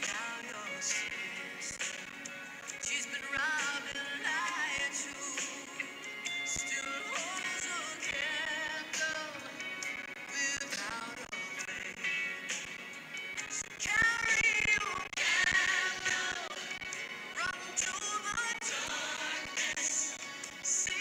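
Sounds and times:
person singing with vibrato: 0:00.0 - 0:01.8, 0:02.7 - 0:12.4, 0:13.4 - 0:21.0.

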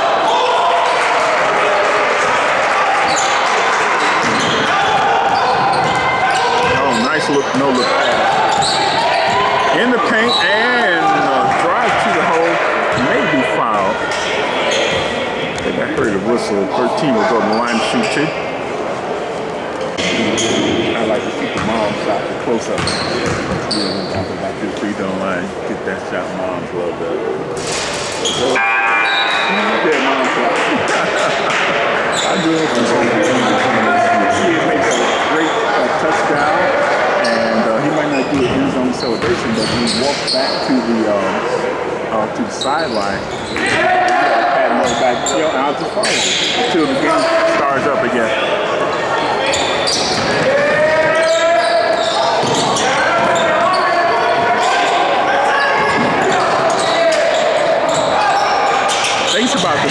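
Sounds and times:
voices shouting and talking: 0:00.0 - 0:59.9
basketball bouncing on hardwood floor: 0:22.8 - 0:23.6.

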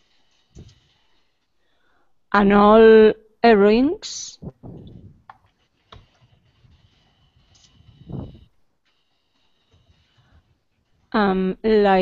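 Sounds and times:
computer keyboard typing: 0:04.6 - 0:11.2.

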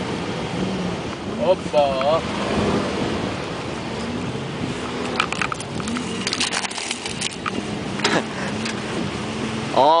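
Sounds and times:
engine humming: 0:00.0 - 0:10.0
road noise: 0:00.0 - 0:10.0
knocks and rattles over bumps: 0:04.9 - 0:08.9.

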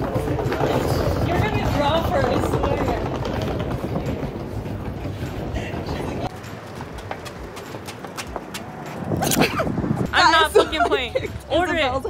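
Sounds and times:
suitcase wheels rolling on tiles: 0:00.0 - 0:07.8
light footsteps: 0:00.0 - 0:09.6
busy echoing background noise: 0:00.0 - 0:12.0.

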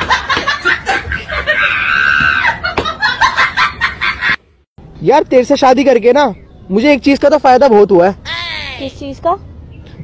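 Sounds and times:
excited laughing and chatter: 0:00.0 - 0:04.4.

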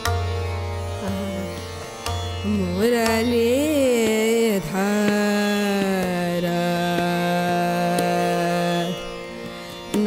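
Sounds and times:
harmonium: 0:00.0 - 0:10.0
tanpura drone: 0:00.0 - 0:10.0.

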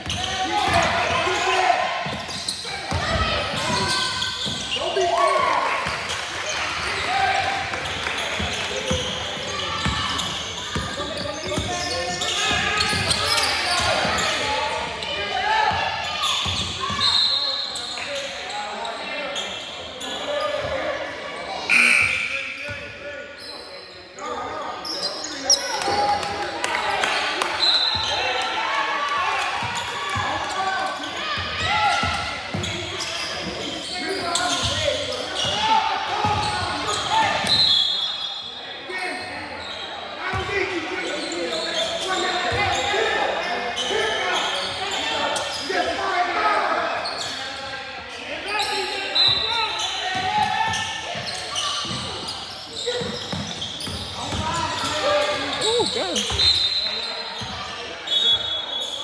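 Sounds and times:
sneakers squeaking: 0:00.0 - 0:25.9, 0:29.6 - 0:46.0, 0:46.6 - 0:59.0.

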